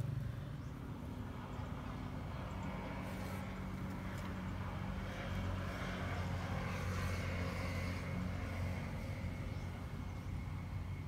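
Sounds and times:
faint outdoor background noise: 0.0 - 11.0
low engine hum: 0.0 - 11.0.

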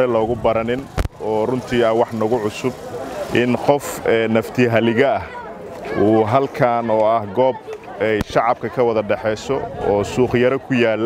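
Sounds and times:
man speaking: 0.0 - 5.3.

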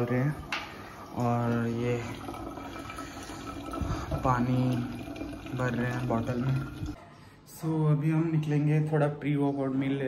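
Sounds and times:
water running into plastic bottle: 0.0 - 7.0.

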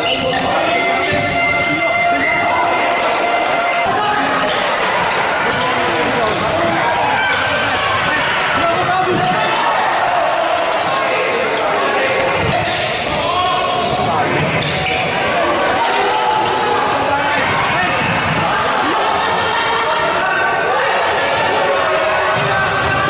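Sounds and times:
players shouting: 0.0 - 23.0
spectators' voices: 0.0 - 23.0.

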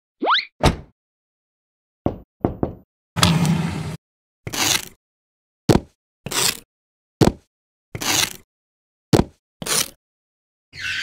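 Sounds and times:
thump: 0.6 - 0.9.

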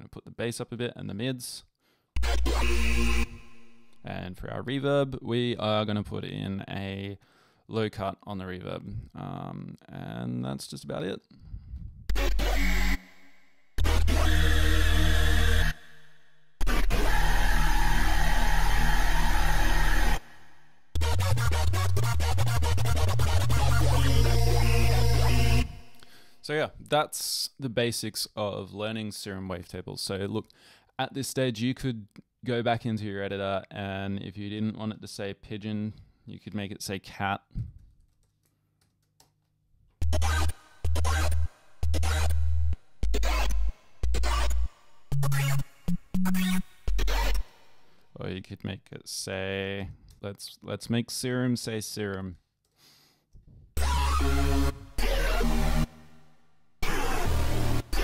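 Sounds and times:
buzzy synth note: 2.2 - 4.8, 12.1 - 25.9, 40.0 - 47.6, 53.8 - 56.2, 56.8 - 58.0
heavy sub-bass: 2.2 - 5.2, 11.9 - 13.0, 13.8 - 15.8, 21.0 - 25.9, 40.0 - 47.4, 53.8 - 55.9
distorted speech-like synth notes: 12.1 - 13.0, 21.0 - 25.7, 40.0 - 42.4, 43.0 - 44.6, 45.2 - 47.4.

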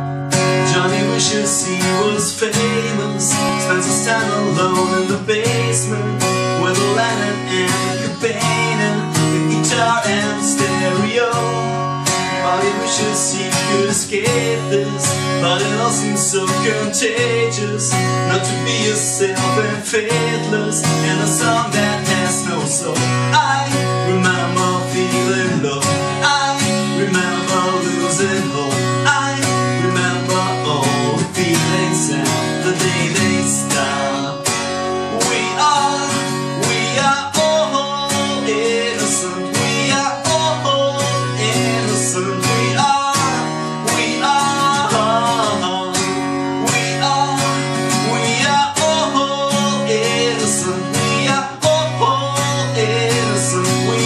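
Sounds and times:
acoustic guitar strumming: 0.0 - 54.0
man singing: 0.0 - 54.0.

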